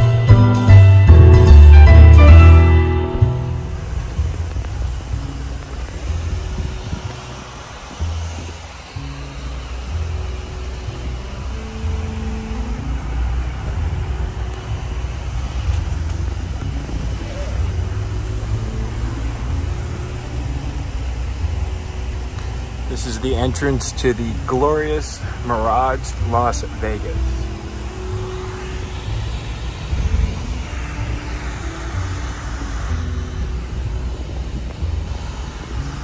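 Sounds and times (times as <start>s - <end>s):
road and engine rumble in car: 0.0s - 36.0s.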